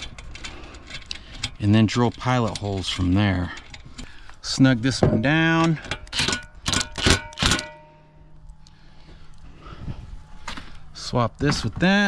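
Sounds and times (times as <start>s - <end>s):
impact driver bursts: 6.1s - 7.9s.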